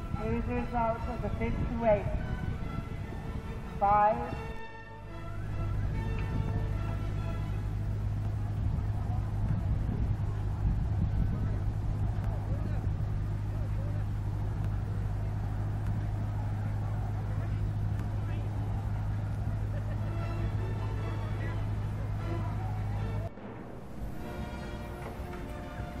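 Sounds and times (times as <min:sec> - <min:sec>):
low engine hum: 0:00.0 - 0:26.0
faint voices: 0:05.0 - 0:23.5.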